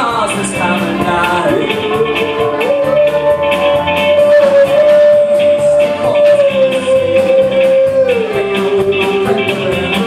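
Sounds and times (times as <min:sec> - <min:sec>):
live band playing: 0:00.0 - 0:10.0
long held high note: 0:01.6 - 0:09.8.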